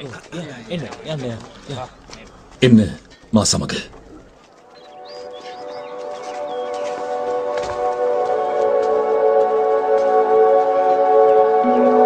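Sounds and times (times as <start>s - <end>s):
birds chirping: 0.0s - 7.3s
ambient music with held chords: 4.8s - 12.0s.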